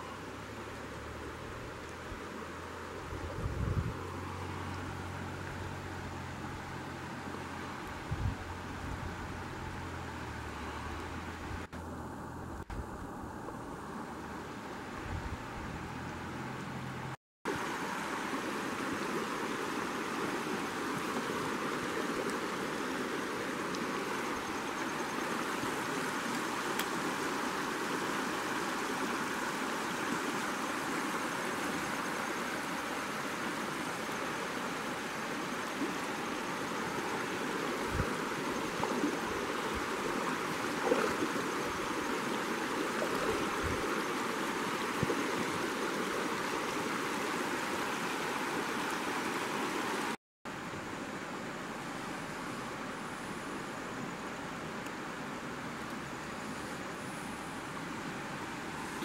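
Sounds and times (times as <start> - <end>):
water rushing over rocks: 17.5 - 59.0.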